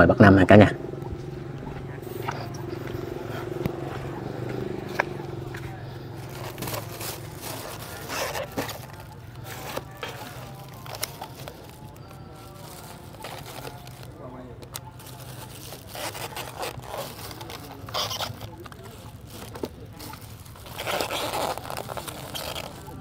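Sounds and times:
food containers clicking: 4.6s - 23.0s
plastic bags rustling: 5.2s - 23.0s.

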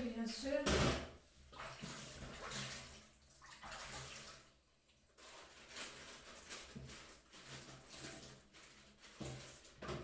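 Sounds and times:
faint water running: 0.0s - 10.0s.

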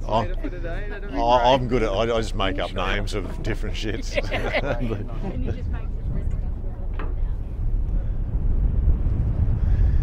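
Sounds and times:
wind buffeting microphone: 0.9s - 10.0s.

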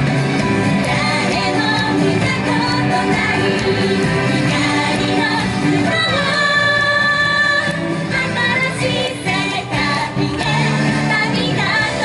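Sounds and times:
band music through speakers: 0.0s - 12.0s
female group singing pop song: 0.8s - 12.0s.

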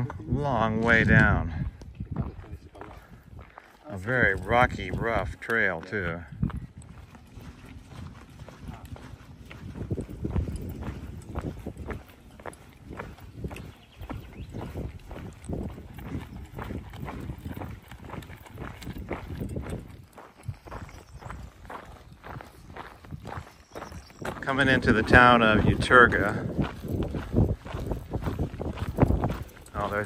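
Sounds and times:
footsteps crunching on gravel: 0.4s - 30.0s
trekking poles clicking on stones: 6.7s - 21.2s.

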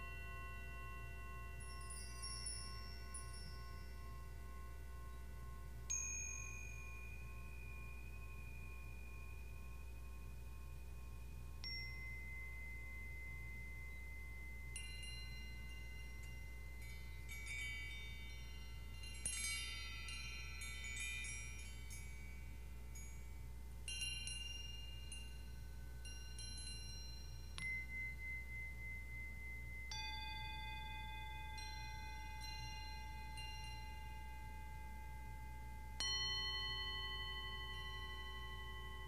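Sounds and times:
lower chime tones: 0.0s - 22.4s
small metal chimes ringing: 0.0s - 39.0s.

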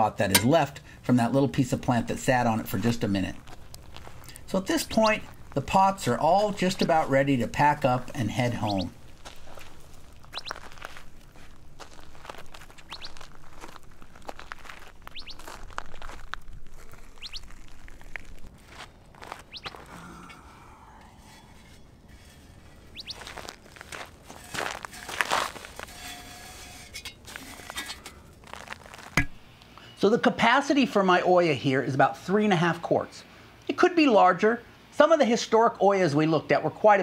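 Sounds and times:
handling clay pot: 0.0s - 20.4s, 21.0s - 29.5s
footsteps on dry dirt: 1.2s - 20.7s, 21.6s - 29.6s
high bird chirps: 8.5s - 9.0s, 10.2s - 10.7s, 12.7s - 13.3s, 15.1s - 15.5s, 17.1s - 17.6s, 19.4s - 19.9s, 22.9s - 23.4s.

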